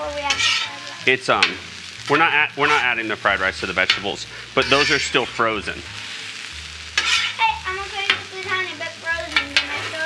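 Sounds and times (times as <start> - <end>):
food sizzling: 0.0 - 10.0
metal spatulas scraping griddle: 0.1 - 1.5, 2.5 - 3.0, 3.8 - 8.2, 9.3 - 10.0.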